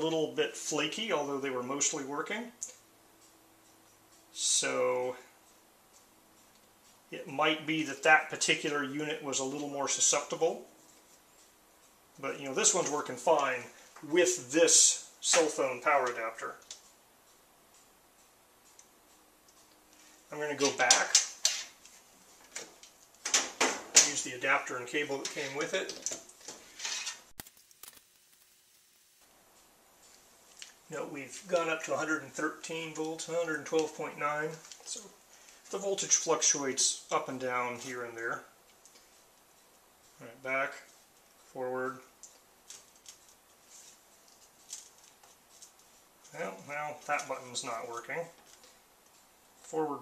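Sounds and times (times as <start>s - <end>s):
cable rustling and scraping: 19.5s - 28.9s, 29.6s - 49.9s.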